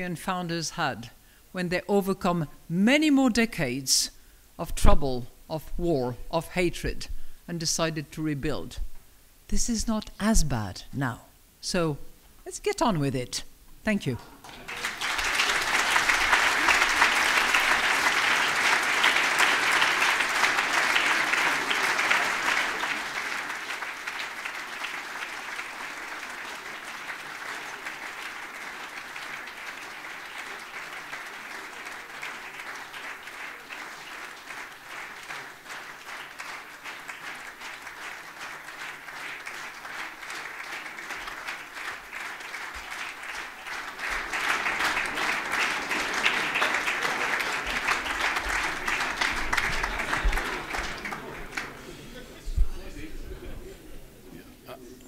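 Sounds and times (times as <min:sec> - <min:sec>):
audience applauding: 0:14.4 - 0:52.2.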